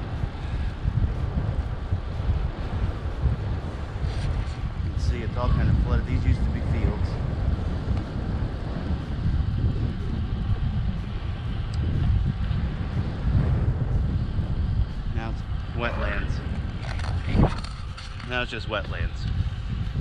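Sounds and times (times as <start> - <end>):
road noise: 0.0 - 20.0
wind buffeting microphone: 0.0 - 20.0.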